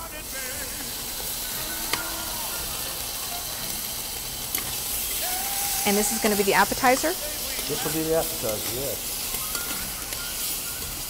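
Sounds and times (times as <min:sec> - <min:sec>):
shrimp sizzling in a pan: 0:00.0 - 0:11.0.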